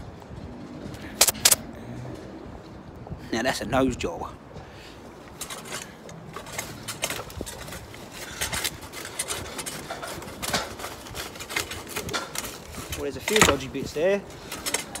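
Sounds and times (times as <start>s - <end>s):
dry ivy rustling and crackling: 5.3s - 15.0s.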